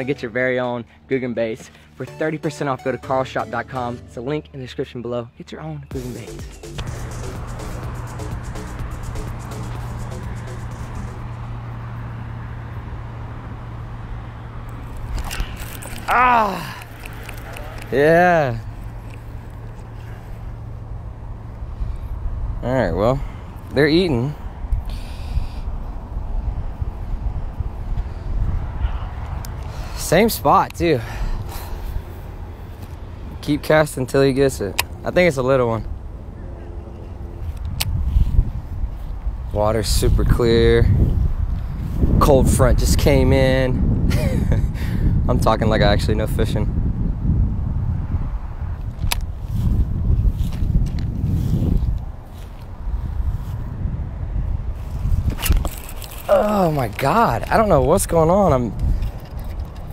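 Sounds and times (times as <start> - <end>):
wind buffeting microphone: 13.5 - 36.5, 37.1 - 59.9
microphone handling noise: 37.4 - 42.6, 48.1 - 53.8, 54.6 - 56.3.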